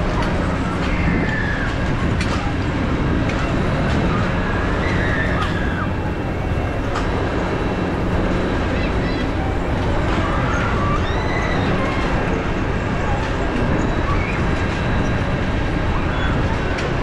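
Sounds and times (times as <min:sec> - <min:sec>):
low machinery hum: 0:00.0 - 0:17.0
distant voices and calls: 0:03.4 - 0:16.8.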